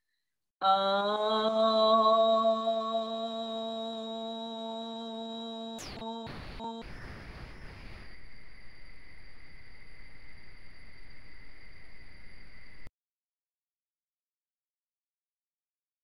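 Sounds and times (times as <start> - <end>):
woman chanting: 0.6 - 6.9
faint high whine: 5.5 - 12.9
low hiss: 5.8 - 12.9.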